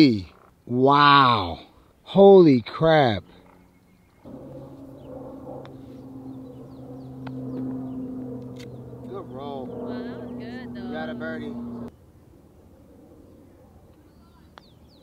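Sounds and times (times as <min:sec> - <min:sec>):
low motor hum: 0:03.2 - 0:14.7.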